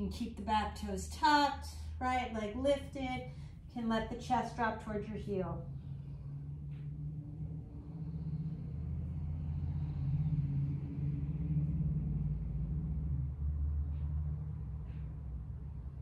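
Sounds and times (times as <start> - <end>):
low rumble: 0.0 - 16.0.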